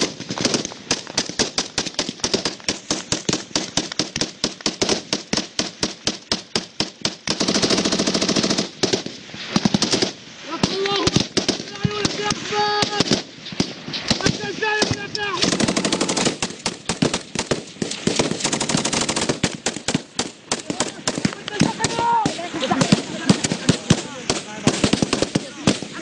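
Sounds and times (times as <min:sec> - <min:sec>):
machine gun firing bursts: 0:00.0 - 0:26.0
men shouting: 0:10.5 - 0:13.1, 0:20.7 - 0:24.8.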